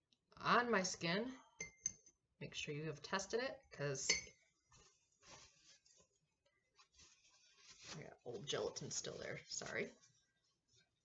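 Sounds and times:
paper towel rustling: 4.6s - 11.0s.

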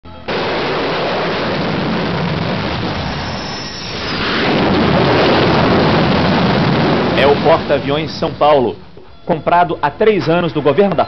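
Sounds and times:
jet engine rushing: 0.3s - 9.0s.

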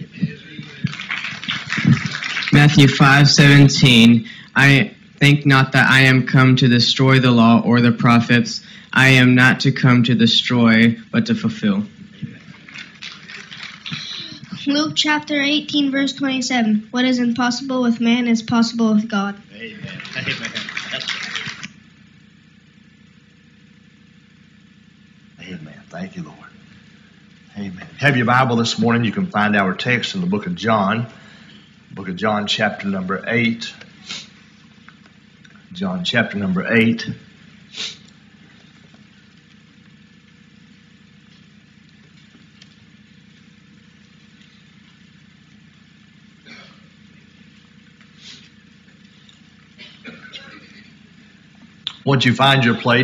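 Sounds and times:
people clapping: 0.0s - 3.7s, 12.2s - 14.7s, 19.6s - 21.8s
low room tone hum: 0.0s - 53.0s.

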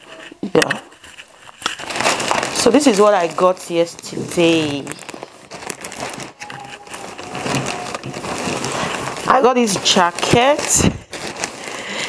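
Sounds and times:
shopping bag rustling: 0.0s - 12.0s.

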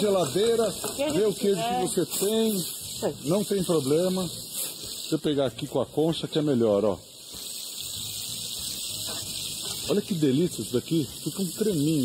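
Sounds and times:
fish sizzling in a frying pan: 0.0s - 12.0s.

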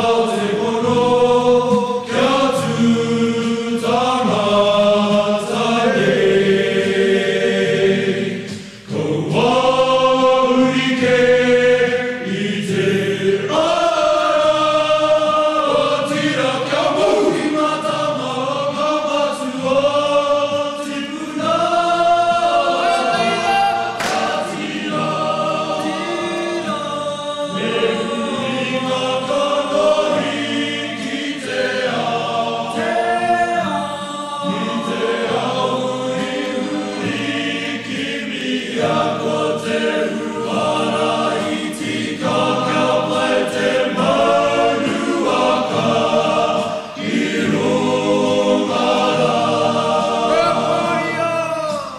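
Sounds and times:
choir singing in harmony: 0.0s - 51.9s.

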